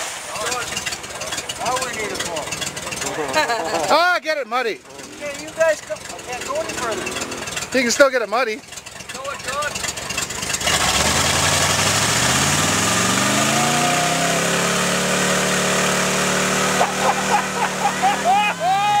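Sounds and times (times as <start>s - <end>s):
off-road engine revving: 0.0s - 19.0s.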